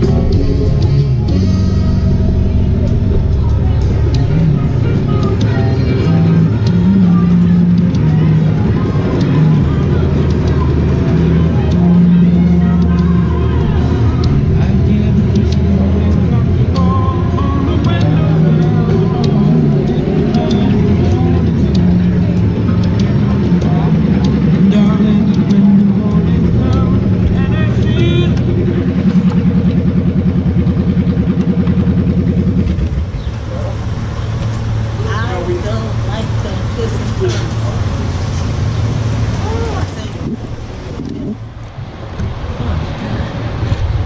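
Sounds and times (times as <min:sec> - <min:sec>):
indistinct voices: 0:00.0 - 0:44.0
motorcycle engine idling: 0:00.0 - 0:44.0.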